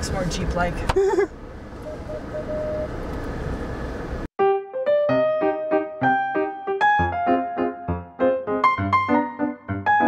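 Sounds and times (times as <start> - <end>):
road and engine noise in car: 0.0 - 4.3
piano music repeated chords: 4.4 - 10.0.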